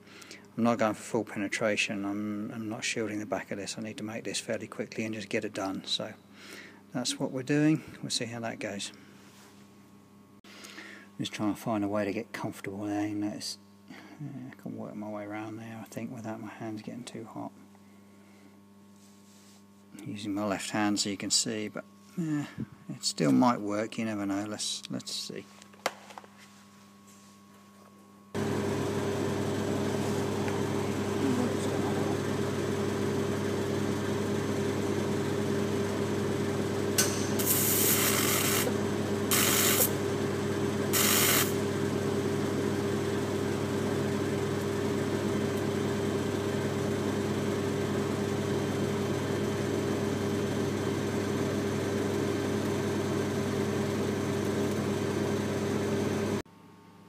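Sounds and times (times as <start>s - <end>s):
welding arc buzzing: 28.4s - 47.5s
welding arc hiss: 37.0s - 40.0s, 40.9s - 41.7s.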